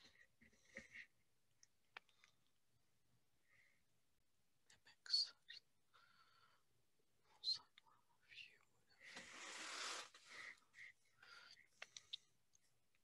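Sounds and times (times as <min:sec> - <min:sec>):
faint whispering: 0:04.6 - 0:06.5, 0:07.2 - 0:12.4.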